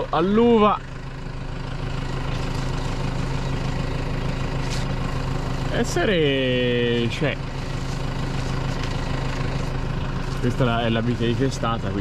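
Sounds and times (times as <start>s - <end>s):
tractor diesel engine idling: 0.0s - 12.0s.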